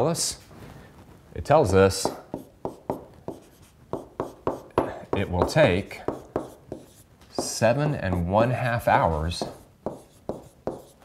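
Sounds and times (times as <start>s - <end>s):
pen tapping and scratching whiteboard: 2.0s - 11.0s.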